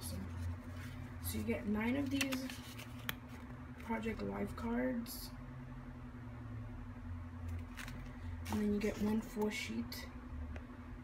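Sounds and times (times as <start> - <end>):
paper cards rustling: 0.0 - 4.0, 7.5 - 9.6
steady low hum: 0.0 - 11.0.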